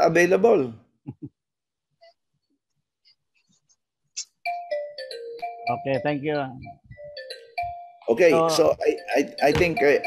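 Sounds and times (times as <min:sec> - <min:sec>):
electronic notification chime: 0:04.5 - 0:10.0.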